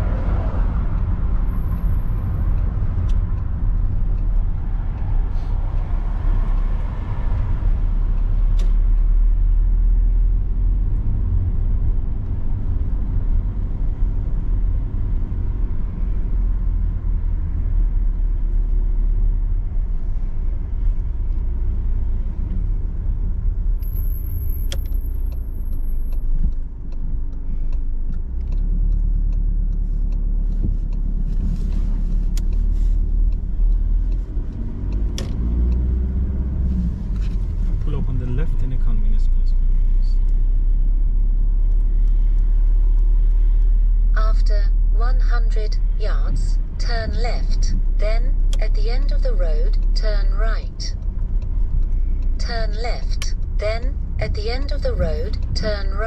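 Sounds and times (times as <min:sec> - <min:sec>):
car engine and road noise: 0:00.0 - 0:56.0.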